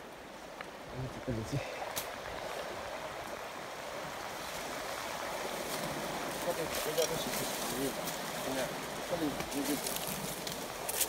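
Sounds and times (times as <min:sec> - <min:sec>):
stream rushing over rocks: 0:00.0 - 0:11.0.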